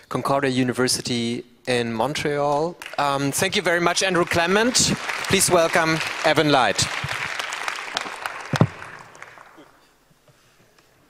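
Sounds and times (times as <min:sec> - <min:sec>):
audience applauding: 0:02.8 - 0:09.8.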